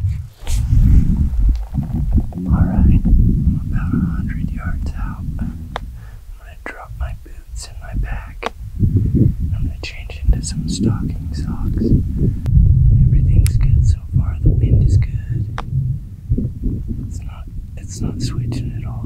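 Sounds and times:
wind rumble on microphone: 0:00.0 - 0:19.0
man whispering: 0:01.6 - 0:08.5, 0:09.5 - 0:12.0, 0:13.0 - 0:15.5, 0:17.1 - 0:19.0.

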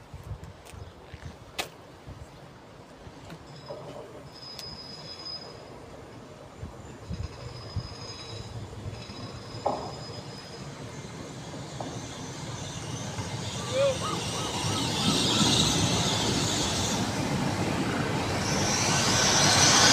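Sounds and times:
train arriving rumble: 0:03.2 - 0:19.9.

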